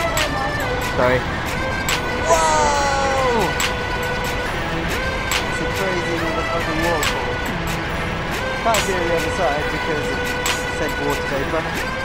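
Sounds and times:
background music with steady beat: 0.0 - 12.0
constant rushing noise: 0.0 - 12.0.

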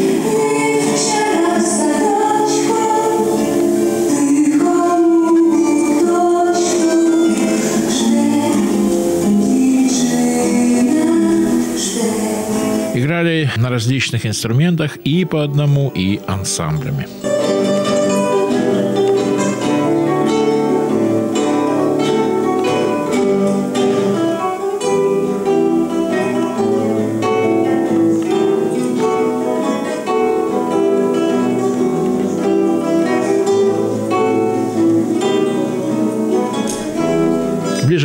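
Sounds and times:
acoustic guitar ensemble: 0.0 - 38.0.

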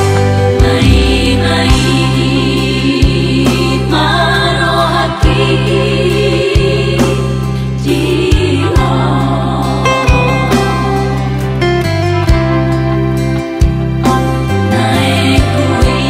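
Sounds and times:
voices singing worship song: 0.0 - 11.3, 14.6 - 16.0
instrumental backing with deep bass: 0.0 - 16.0.

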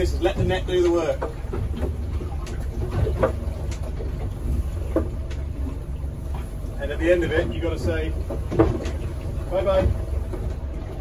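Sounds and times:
boat engine rumble: 0.0 - 11.0.

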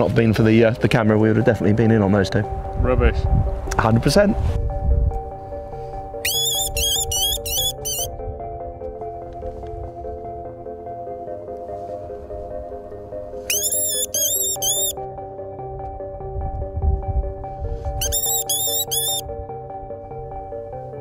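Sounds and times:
background music: 0.0 - 21.0
fox caller squeals: 6.2 - 8.1, 13.5 - 14.9, 18.0 - 19.2.

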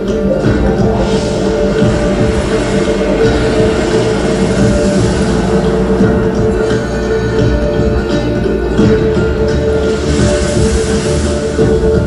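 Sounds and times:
sustained held tones: 0.0 - 12.0
dense low rumble: 0.1 - 12.0.

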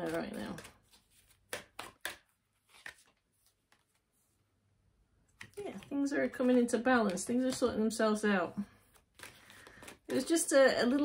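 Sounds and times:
cards tapping on a table: 1.4 - 3.0.

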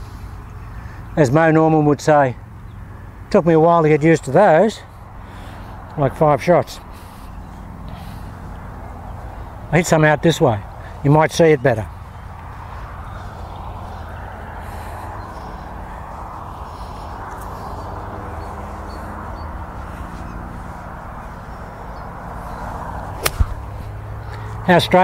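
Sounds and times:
golf club striking ball: 23.2 - 24.0.

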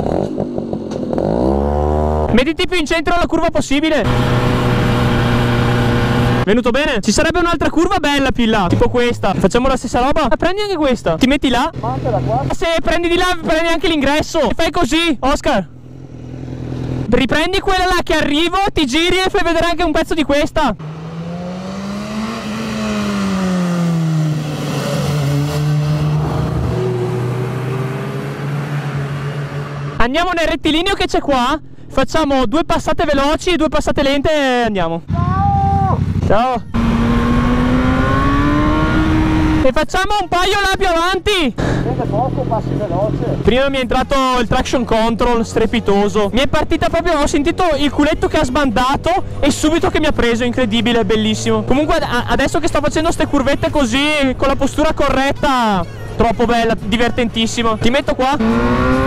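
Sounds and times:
motorcycle engine while riding: 0.0 - 2.4, 4.0 - 6.5, 15.7 - 17.1, 20.8 - 30.0, 35.1 - 39.8, 56.8 - 59.0
car passing: 20.8 - 30.0, 35.8 - 39.7, 56.8 - 59.0.

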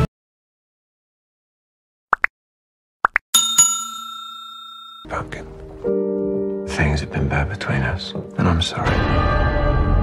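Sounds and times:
bright bell ding: 3.4 - 5.2.

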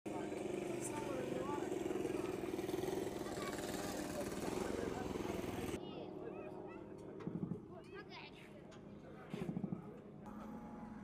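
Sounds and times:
vehicle engine running: 0.1 - 5.8
crowd talking: 0.1 - 10.1.

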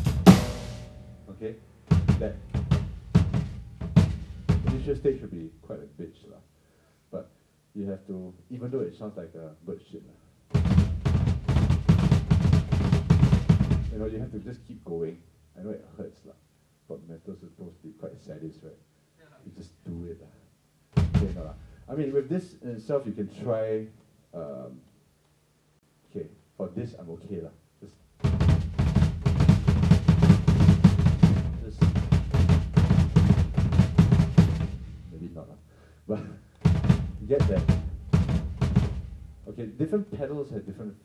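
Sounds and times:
drum kit playing: 0.0 - 5.4, 10.5 - 14.3, 21.0 - 21.9, 28.2 - 35.3, 36.6 - 39.6
rapid bass drum strokes: 0.0 - 5.6, 10.5 - 14.5, 21.0 - 22.1, 28.2 - 35.4, 36.6 - 39.7.

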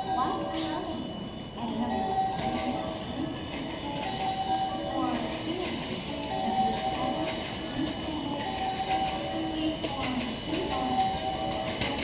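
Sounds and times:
electric train approaching and slowing: 0.0 - 12.0
loudspeaker voice announcement: 1.6 - 12.0.

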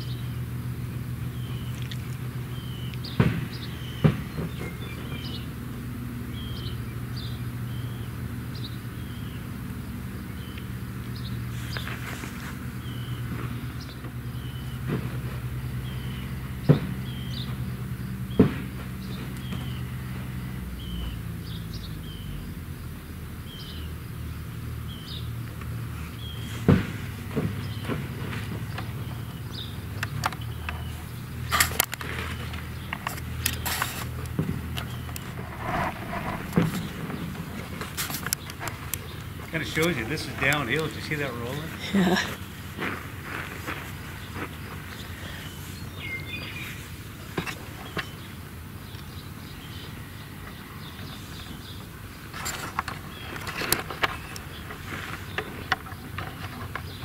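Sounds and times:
sharp knocks: 3.1 - 4.8.

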